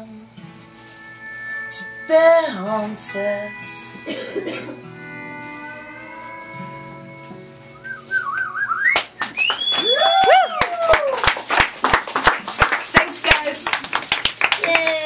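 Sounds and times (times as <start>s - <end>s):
acoustic guitar and pedal steel: 0.0s - 9.2s
loud whistles: 7.8s - 11.0s
warbling whistle: 7.8s - 11.0s
crowd clapping: 8.8s - 15.0s.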